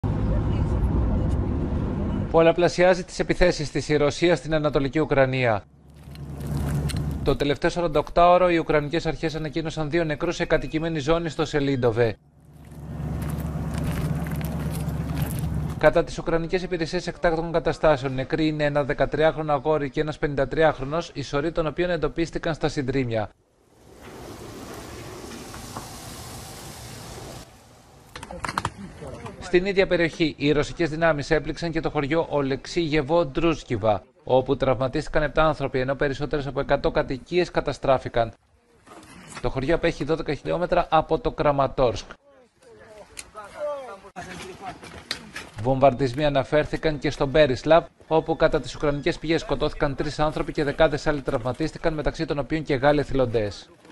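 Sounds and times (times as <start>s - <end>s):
low outdoor rumbling: 5.1s - 8.1s, 11.9s - 16.9s, 23.3s - 29.4s
steady hissing noise: 23.4s - 28.2s.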